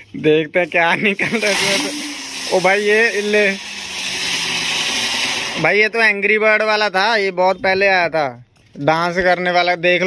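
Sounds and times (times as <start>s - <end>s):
person speaking: 0.0s - 3.6s, 5.6s - 10.0s
firecracker hissing: 0.7s - 6.2s.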